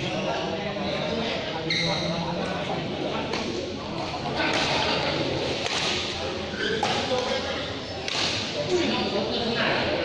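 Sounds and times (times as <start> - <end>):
racket hitting shuttlecock: 5.5 - 6.2.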